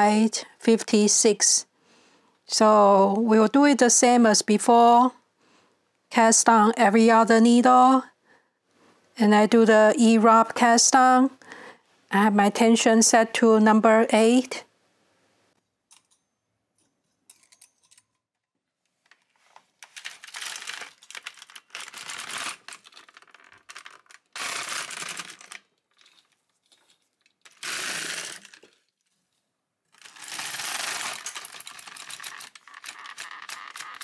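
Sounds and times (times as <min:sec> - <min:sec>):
knitting machine carriage passing: 0:20.0 - 0:25.6, 0:27.5 - 0:28.6, 0:30.0 - 0:34.0.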